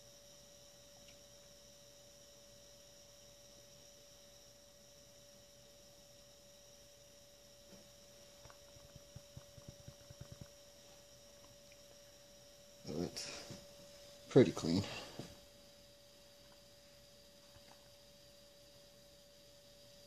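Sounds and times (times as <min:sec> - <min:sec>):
faint hum: 0:00.0 - 0:20.0.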